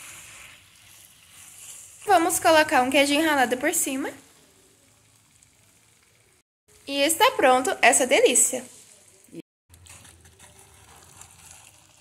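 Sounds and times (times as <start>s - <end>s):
faint sizzle from frying pan: 0.0s - 12.0s.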